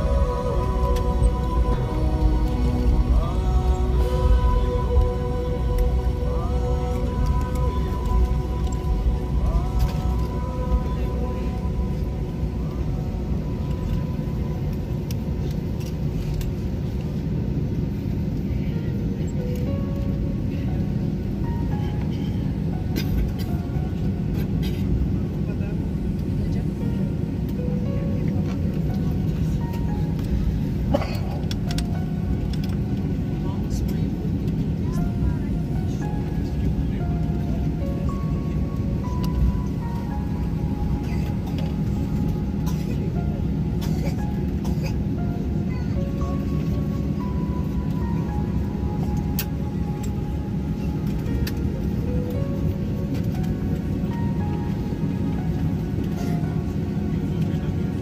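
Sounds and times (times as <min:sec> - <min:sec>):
airliner cabin rumble: 0:00.0 - 0:58.0
background music: 0:00.0 - 0:58.0.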